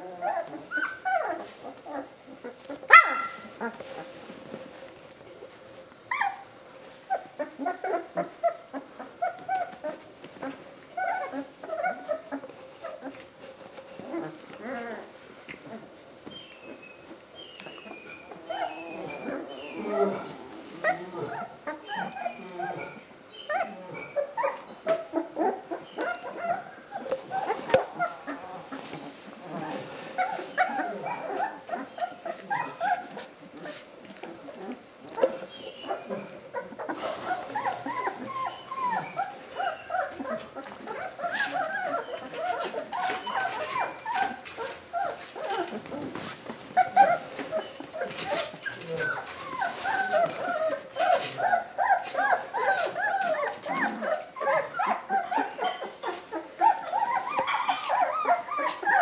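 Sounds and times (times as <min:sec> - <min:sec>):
puppies yelping: 0:00.0 - 0:04.0, 0:06.1 - 0:13.2, 0:15.7 - 0:59.0
puppy whining: 0:00.0 - 0:59.0.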